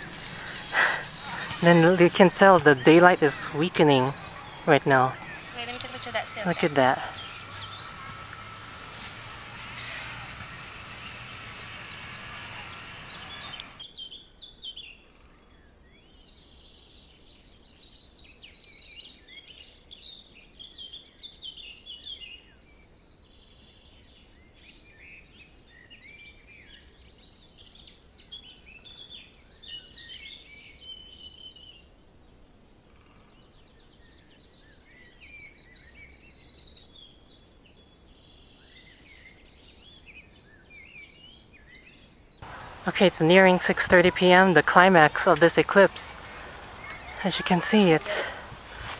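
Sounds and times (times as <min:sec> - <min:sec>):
small birds chirping: 0:00.0 - 0:13.8, 0:42.4 - 0:48.9.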